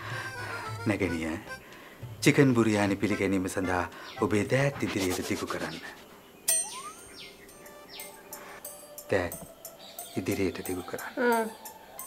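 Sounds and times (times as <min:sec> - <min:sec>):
rising pitch glide: 0:06.5 - 0:07.3.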